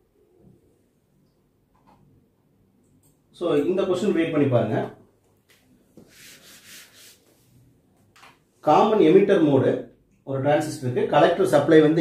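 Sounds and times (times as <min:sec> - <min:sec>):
hand rubbing across paper: 0:06.0 - 0:07.6.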